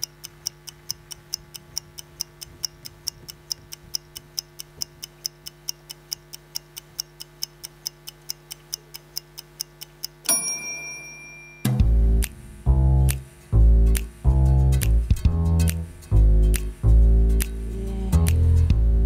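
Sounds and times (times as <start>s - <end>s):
clock-like ticking: 0.0s - 10.6s
low steady hum: 0.0s - 19.0s
bright bell-like ding: 10.3s - 11.8s.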